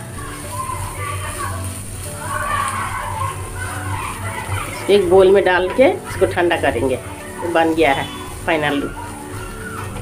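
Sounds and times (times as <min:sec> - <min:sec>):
background music: 0:00.0 - 0:10.0
faint background voices: 0:00.0 - 0:10.0.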